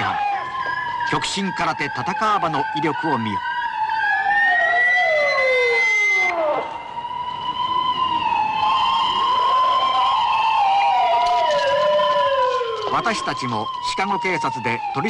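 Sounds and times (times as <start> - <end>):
police sirens wailing: 0.0 - 15.0.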